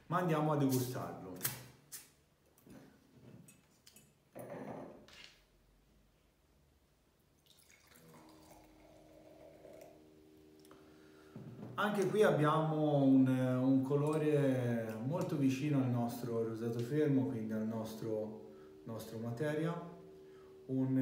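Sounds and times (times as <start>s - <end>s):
sparkling wine fizzing pour: 7.3s - 11.4s.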